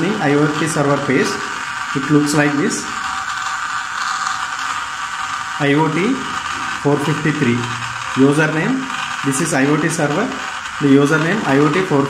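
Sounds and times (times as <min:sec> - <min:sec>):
gear motor whining: 0:00.0 - 0:12.0.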